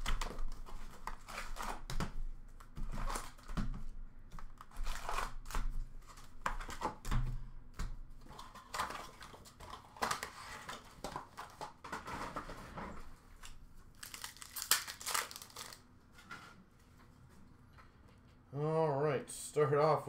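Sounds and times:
foil wrappers crinkling: 13.9s - 15.8s.

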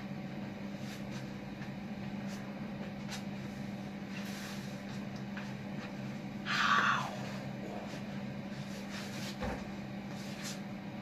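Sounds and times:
low mechanical hum: 0.0s - 11.0s.

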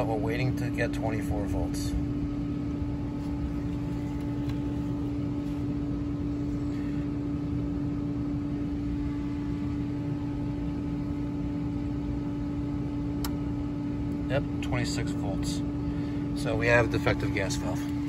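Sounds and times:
pool pump motor humming: 0.0s - 18.0s.

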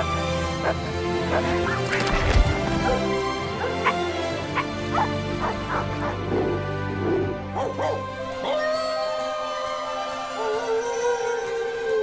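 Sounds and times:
sustained background music: 0.0s - 12.0s.

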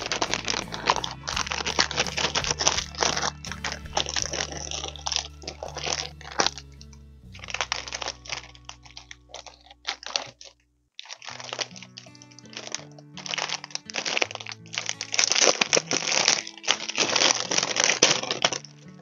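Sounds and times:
background music with low notes: 0.0s - 10.4s, 11.3s - 19.0s
plastic wrapping crinkling: 0.0s - 19.0s.

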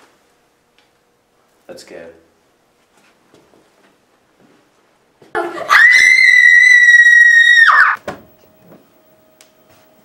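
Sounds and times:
person screaming high-pitched: 5.7s - 8.0s.

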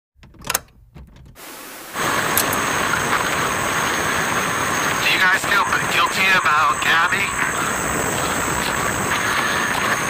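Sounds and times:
background hiss: 0.5s - 10.0s.

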